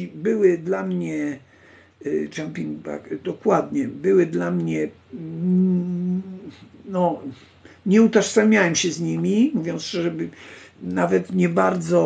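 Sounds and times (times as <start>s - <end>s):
man speaking: 0.0s - 1.4s, 2.0s - 12.0s
man humming hesitation: 5.1s - 7.4s.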